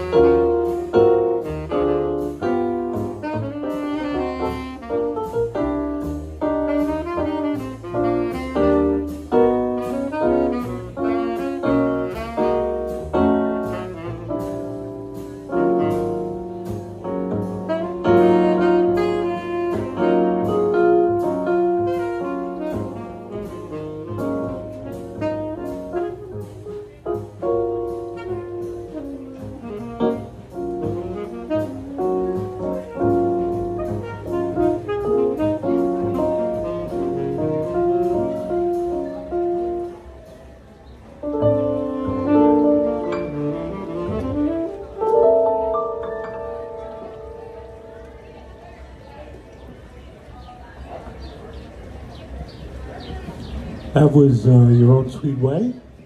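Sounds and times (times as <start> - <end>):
tenor saxophone jazz melody: 0.0 - 48.9
piano accompaniment: 0.0 - 56.0.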